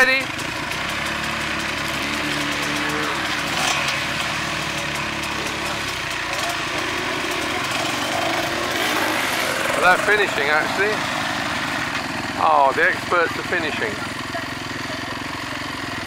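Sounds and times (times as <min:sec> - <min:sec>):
dirt bike engines idling: 0:00.0 - 0:16.0.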